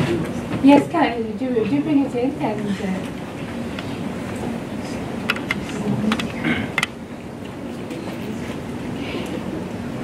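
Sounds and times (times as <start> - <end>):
faint voices: 0.0 - 10.0
room noise: 0.0 - 10.0.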